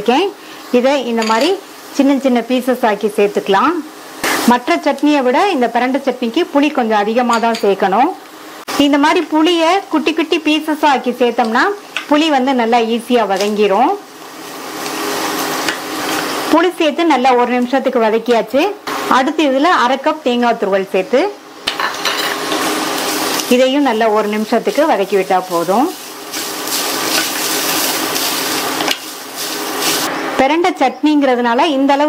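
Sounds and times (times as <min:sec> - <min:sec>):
frying in oil: 0:00.0 - 0:32.0
wooden spatula scraping: 0:24.2 - 0:30.2.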